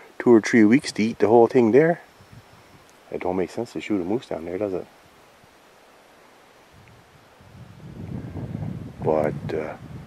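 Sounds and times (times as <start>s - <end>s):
wind buffeting microphone: 2.1s - 4.2s, 6.7s - 10.0s.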